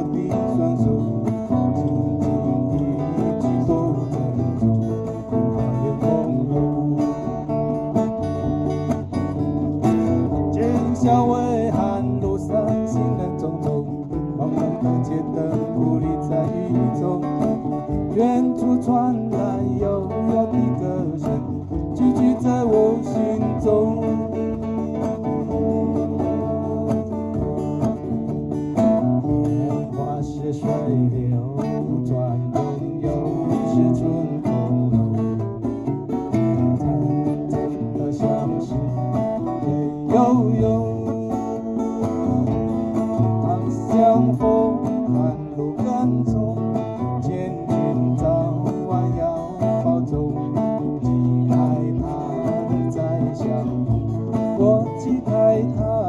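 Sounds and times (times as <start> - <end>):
acoustic guitars strumming: 0.0 - 56.0
hand drum beat: 0.0 - 56.0.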